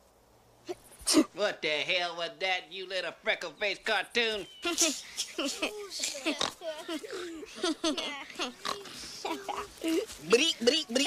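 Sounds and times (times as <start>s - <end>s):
boy laughing under his breath: 4.6s - 10.1s.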